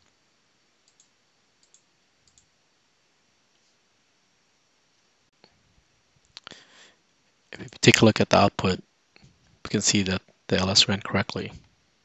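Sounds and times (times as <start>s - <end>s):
computer mouse clicks: 0.8s - 2.5s.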